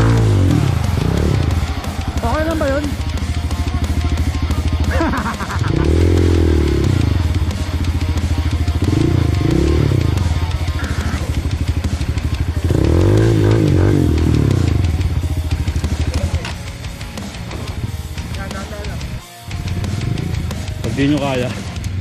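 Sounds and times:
dirt bike engine revving: 0.0s - 16.6s, 19.5s - 22.0s
background music: 0.0s - 22.0s.

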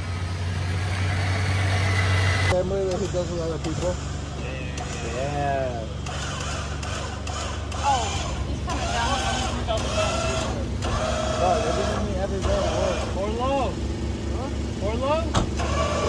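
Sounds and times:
vehicle engine idling: 0.0s - 16.0s
indistinct voices talking: 2.5s - 16.0s.

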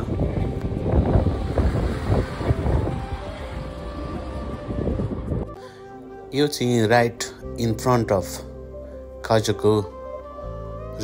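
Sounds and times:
wind buffeting microphone: 0.0s - 5.6s.

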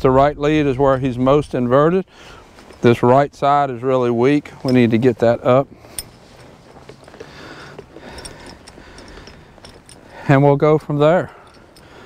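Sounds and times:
horse hooves in soft dirt: 0.0s - 12.0s.

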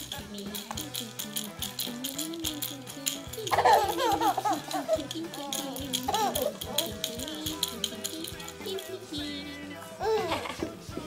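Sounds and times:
rattle shaking: 0.0s - 9.6s
baby laughing: 3.0s - 7.6s, 10.0s - 10.7s.

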